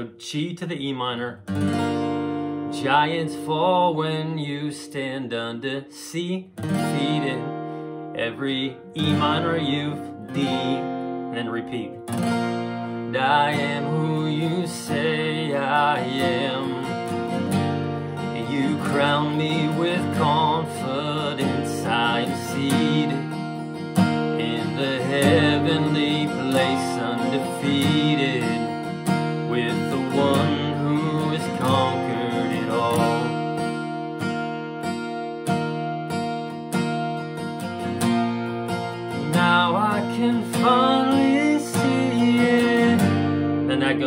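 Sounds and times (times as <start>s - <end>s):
man singing: 0.0s - 1.5s, 2.6s - 12.2s, 13.0s - 33.8s, 39.0s - 44.0s
acoustic guitar strumming: 0.0s - 44.0s.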